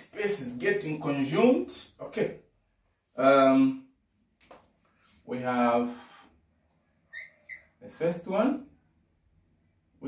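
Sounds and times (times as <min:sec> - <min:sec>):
marker squeaking on whiteboard: 0:07.0 - 0:07.8.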